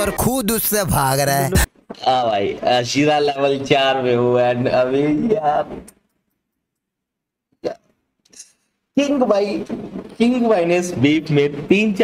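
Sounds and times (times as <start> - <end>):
man laughing: 1.2 - 1.7.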